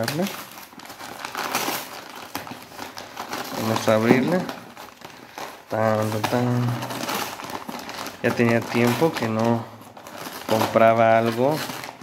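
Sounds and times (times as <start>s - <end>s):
paper envelope crinkling: 0.0s - 12.0s
sharp crackle of paper: 0.0s - 12.0s.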